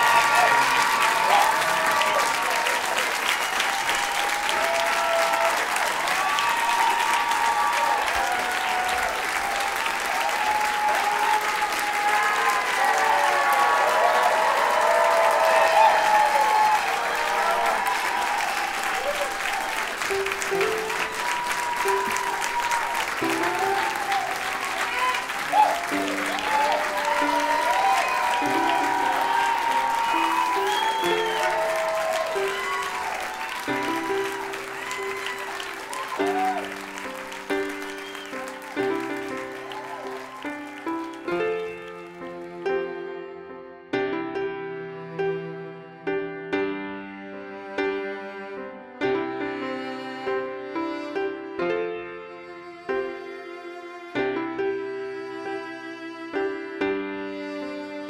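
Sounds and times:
audience applauding: 0.0s - 42.8s
music playing: 19.3s - 43.4s.

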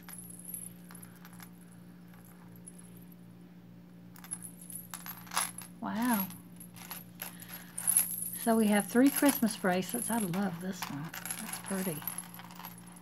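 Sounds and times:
metal bracelets clinking: 0.0s - 3.2s, 4.1s - 13.0s.

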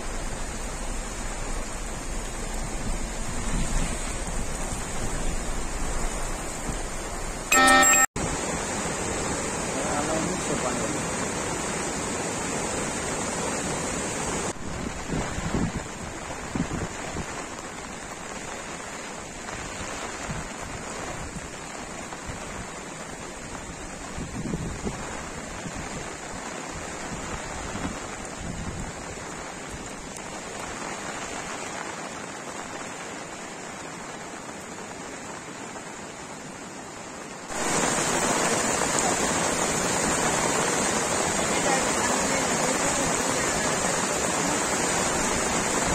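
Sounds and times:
wind gusting on microphone: 0.0s - 7.4s, 13.9s - 18.0s, 23.4s - 30.1s
floodwater rushing: 0.0s - 45.9s.

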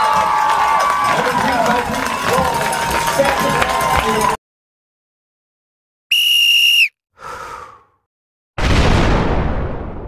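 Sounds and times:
high whistle blast: 6.1s - 7.0s.

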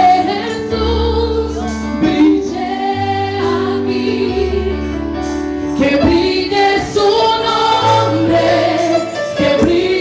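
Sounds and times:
women's choir singing: 0.0s - 4.7s, 5.8s - 10.0s
woman singing into microphone: 0.0s - 4.8s, 5.8s - 10.0s.

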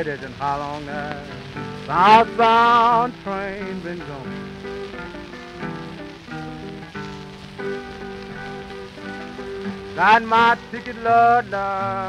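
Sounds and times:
old blues record instrumental: 0.0s - 12.0s
record surface noise: 0.0s - 12.0s.

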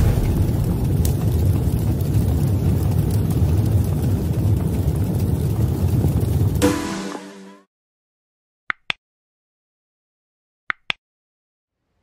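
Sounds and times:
loud low rumble: 0.0s - 4.8s.

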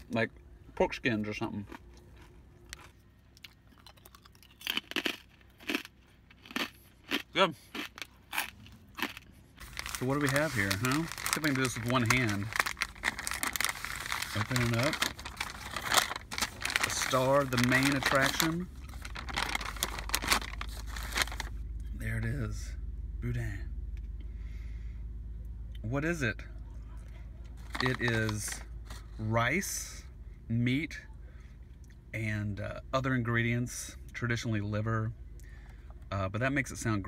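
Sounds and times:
low steady hum: 0.0s - 37.0s
crunchy food being chewed: 1.6s - 21.2s
paper crinkling and tearing: 9.6s - 21.6s, 27.6s - 29.0s.

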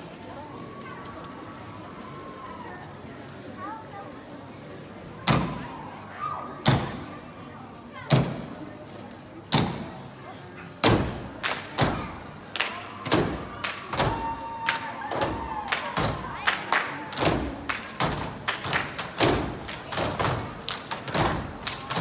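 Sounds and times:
jump ropes striking stage: 10.8s - 22.0s.

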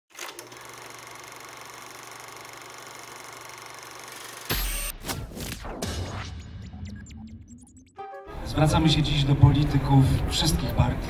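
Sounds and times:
film projector rattling: 0.1s - 4.5s.

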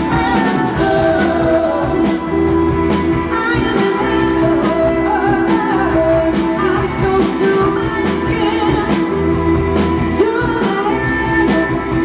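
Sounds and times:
woman singing: 0.0s - 2.3s, 3.2s - 9.3s, 10.0s - 12.0s
bass guitar: 0.0s - 12.0s
electric guitar: 0.0s - 12.0s
steady drum beat: 0.0s - 12.0s.

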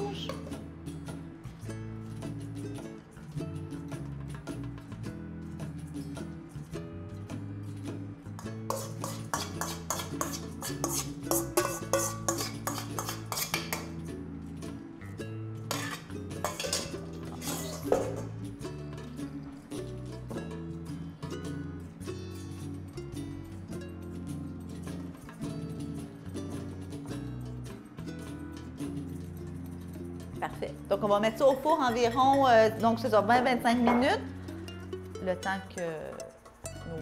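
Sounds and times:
background music: 0.0s - 37.0s
utensils clinking against glass dish: 8.3s - 14.0s, 15.6s - 37.0s.

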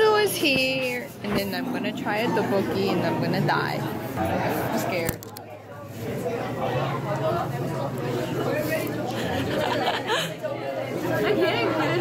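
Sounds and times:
voices chattering: 0.0s - 12.0s.

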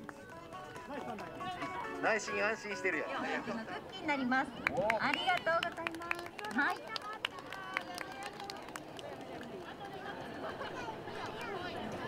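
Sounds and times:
voices chattering: 0.0s - 12.0s
children clapping: 4.6s - 10.0s.

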